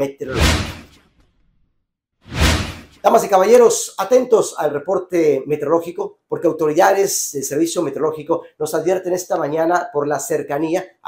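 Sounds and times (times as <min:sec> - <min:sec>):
whoosh sound effect: 0:00.2 - 0:01.5, 0:02.3 - 0:03.2.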